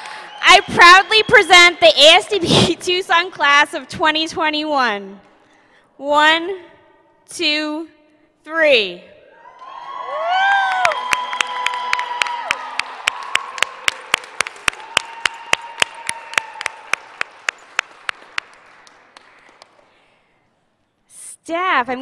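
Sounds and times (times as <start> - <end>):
audience applauding and cheering: 0.0 - 1.2, 9.4 - 20.1
person whooping: 9.4 - 13.9
sharp close clapping: 10.8 - 20.0.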